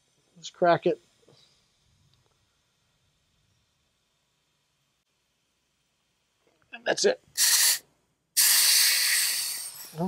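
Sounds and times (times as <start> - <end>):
high-pressure air hissing: 7.3 - 10.0.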